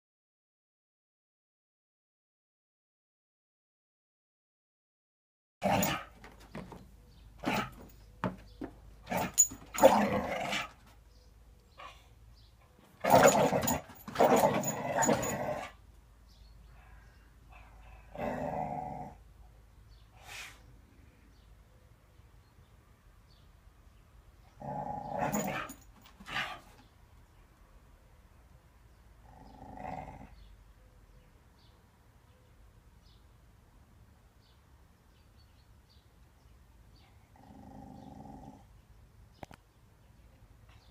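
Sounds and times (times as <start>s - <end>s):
dog growling: 7.4s - 7.9s, 13.0s - 15.8s, 18.0s - 19.2s, 24.6s - 26.6s, 29.2s - 30.4s, 37.3s - 38.7s.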